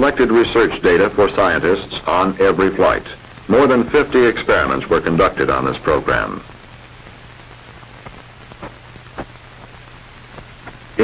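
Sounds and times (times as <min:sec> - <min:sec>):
crackles and pops: 0:00.0 - 0:11.0
film soundtrack hiss: 0:00.0 - 0:11.0
steady low hum: 0:00.0 - 0:11.0.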